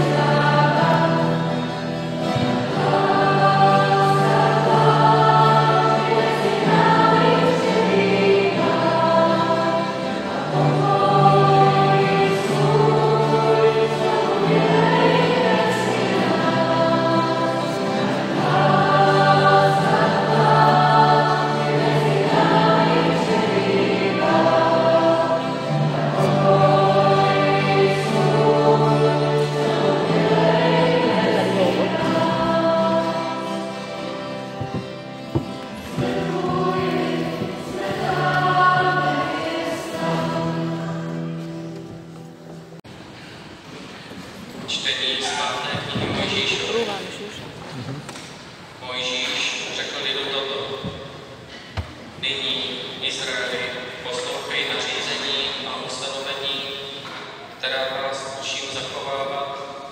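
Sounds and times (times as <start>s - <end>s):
choir singing: 0.0s - 42.0s.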